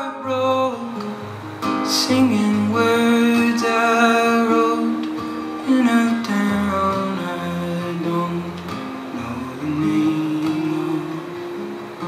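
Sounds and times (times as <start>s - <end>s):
acoustic guitar chords: 0.0s - 12.0s.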